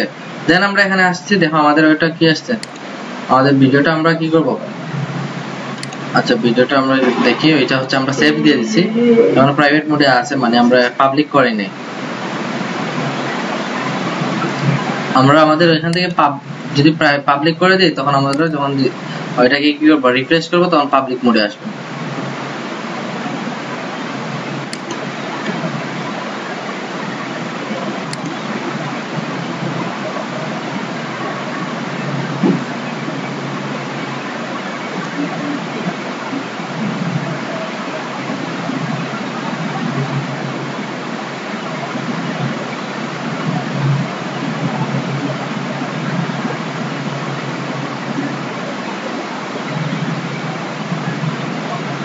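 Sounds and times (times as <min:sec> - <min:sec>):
faint low murmurs: 0:00.0 - 0:52.0
recording hiss: 0:00.0 - 0:52.0.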